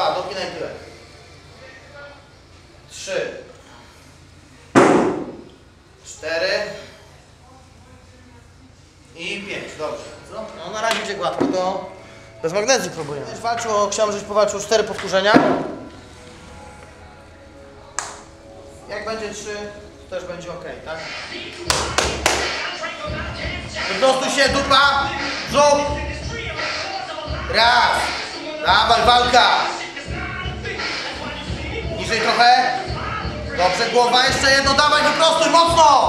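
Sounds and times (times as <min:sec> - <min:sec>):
background music: 0:00.0 - 0:07.0, 0:09.1 - 0:36.0
loud sharp bang: 0:04.8 - 0:05.5.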